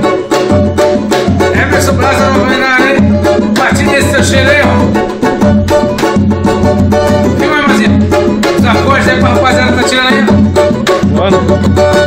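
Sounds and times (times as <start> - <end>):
banjo strummed rhythmically: 0.0 - 12.0
man singing: 1.4 - 5.8, 7.1 - 10.5.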